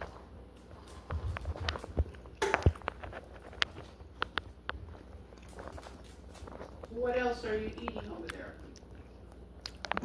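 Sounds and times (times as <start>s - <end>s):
man chewing food: 0.0s - 6.9s, 7.9s - 10.0s.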